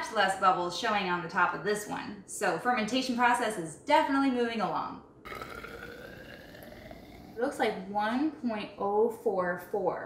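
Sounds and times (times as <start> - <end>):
thin rising tone of filling cylinder: 5.3 - 7.7.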